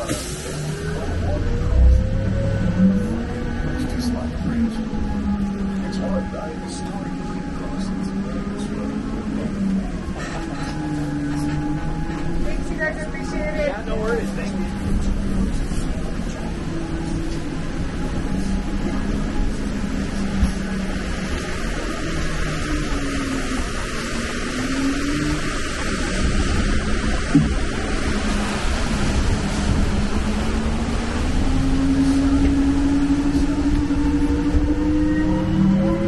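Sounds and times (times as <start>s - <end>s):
road noise: 0.0s - 36.0s
tram drivetrain humming: 0.0s - 36.0s.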